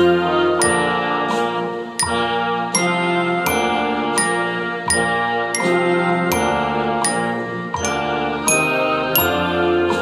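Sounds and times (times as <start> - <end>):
glockenspiel notes ringing: 0.6 - 1.4, 2.0 - 10.0.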